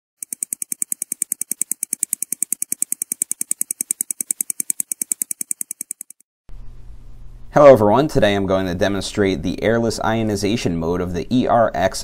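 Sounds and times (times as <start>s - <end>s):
mechanical stopwatch ticking: 0.2s - 6.2s.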